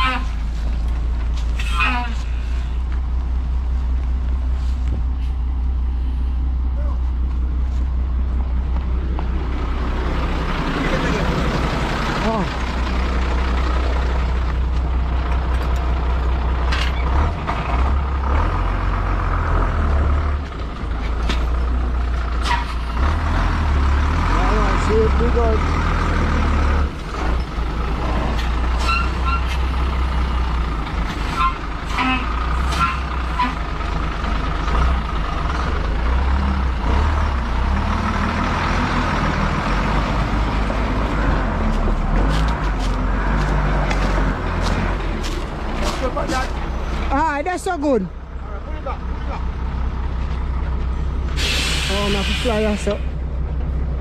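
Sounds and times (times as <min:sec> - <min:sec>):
diesel truck engine rumbling: 0:00.0 - 0:54.0.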